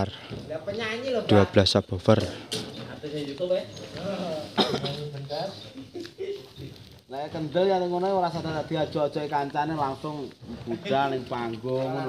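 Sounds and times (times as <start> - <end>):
person coughing: 4.5 - 5.1.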